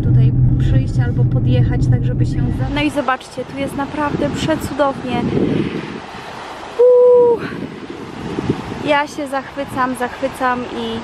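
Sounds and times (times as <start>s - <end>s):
wind on microphone: 0.0s - 11.0s
waves on a pebble beach: 2.8s - 11.0s.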